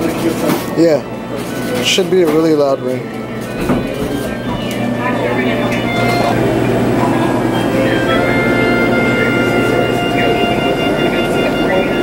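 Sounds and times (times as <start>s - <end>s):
indistinct chatter of people: 0.0s - 12.0s
steady low hum: 2.7s - 12.0s.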